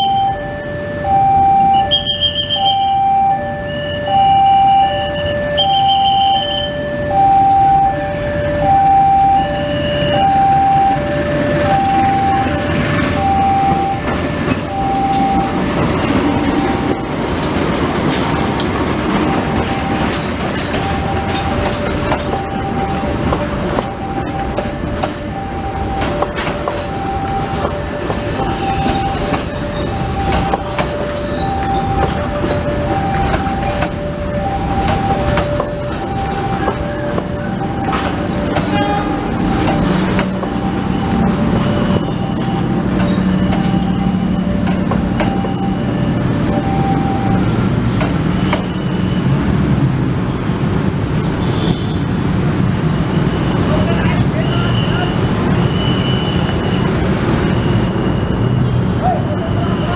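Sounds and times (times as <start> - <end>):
level-crossing alarm two-tone chime: 0.0 - 17.4, 18.3 - 49.4, 53.0 - 59.9
train wheels rumbling on rail: 1.7 - 59.9.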